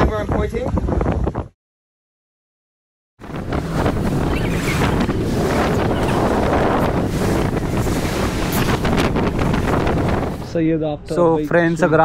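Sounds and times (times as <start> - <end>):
wind buffeting microphone: 0.0 - 1.6, 3.2 - 12.0.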